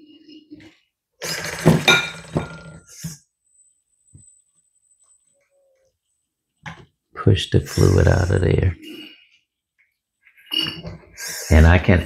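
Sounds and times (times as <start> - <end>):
sputtering hydraulic fluid burst: 1.2 - 1.8.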